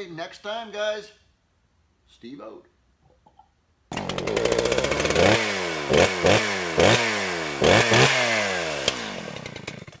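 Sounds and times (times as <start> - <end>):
small engine revving: 3.9 - 10.0.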